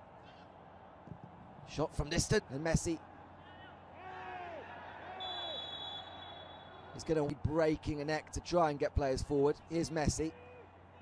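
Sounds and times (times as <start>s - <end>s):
players shouting: 2.9s - 7.7s
referee's whistle: 5.2s - 6.9s.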